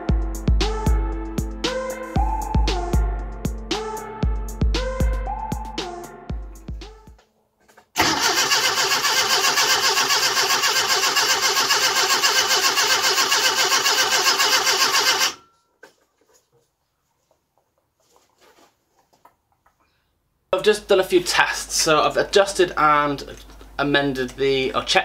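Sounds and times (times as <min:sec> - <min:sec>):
background music: 0:00.0 - 0:07.2
car engine cranking on starter: 0:08.0 - 0:15.4.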